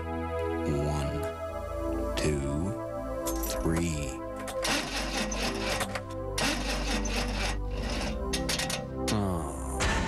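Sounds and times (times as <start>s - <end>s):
car starter cranking engine: 4.4s - 9.0s.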